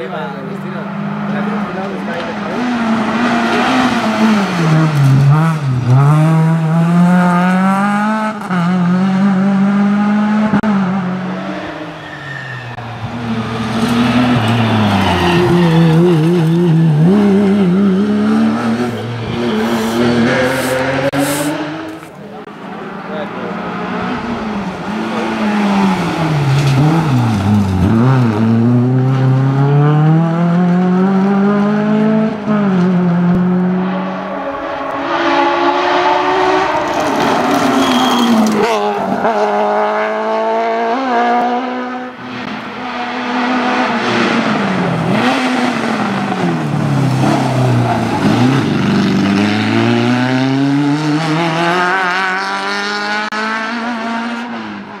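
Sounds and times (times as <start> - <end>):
racing car engines revving: 0.0 - 55.0.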